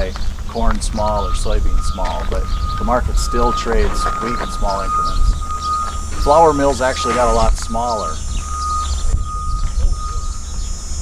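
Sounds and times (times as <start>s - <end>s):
faint high whine: 0.0s - 11.0s
wind rumble on microphone: 0.0s - 11.0s.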